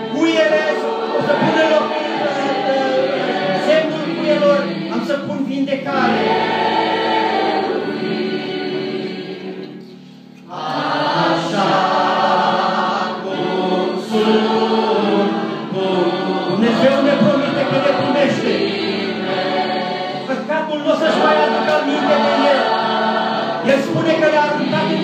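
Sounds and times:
choir singing a hymn: 0.0 - 25.0.

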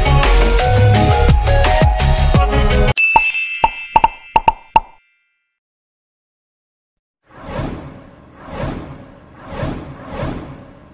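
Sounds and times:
whooshes: 7.3 - 10.9.

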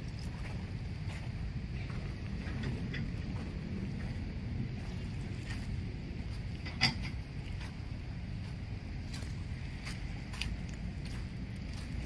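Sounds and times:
footsteps on pebbles: 0.0 - 6.6, 7.3 - 12.0
wind rumble on microphone: 0.0 - 12.0.

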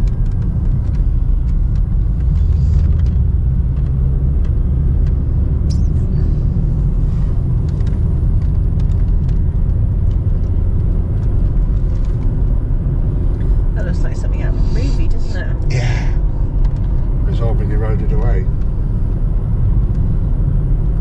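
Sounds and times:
car tyres and engine rumble: 0.0 - 21.0.

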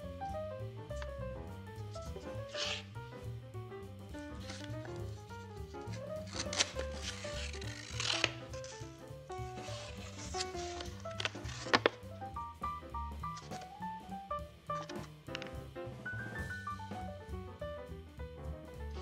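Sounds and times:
instrumental background music: 0.0 - 19.0
paper rustling and crinkling: 1.8 - 2.9, 4.4 - 12.0, 13.3 - 13.8, 14.8 - 15.5
sharp paper crackles: 1.8 - 2.9, 4.3 - 12.1, 13.3 - 13.8, 14.7 - 15.5.

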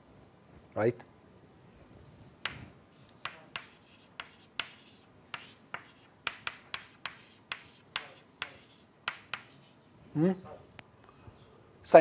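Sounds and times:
writing taps and scratches on board: 2.4 - 9.8.

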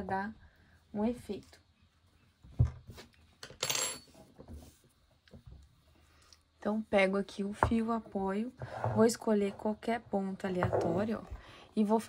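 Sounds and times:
yarn scraping across table: 7.6 - 11.4.

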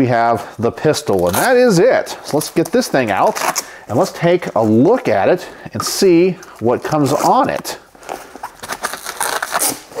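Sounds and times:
hook-and-loop straps pulled apart: 1.1 - 3.7, 8.4 - 10.0.

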